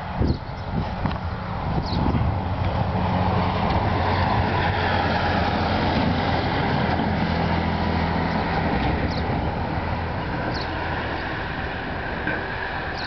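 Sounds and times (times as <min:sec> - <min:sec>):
heavy vehicle engine running: 0:00.0 - 0:13.0
road noise: 0:00.0 - 0:13.0.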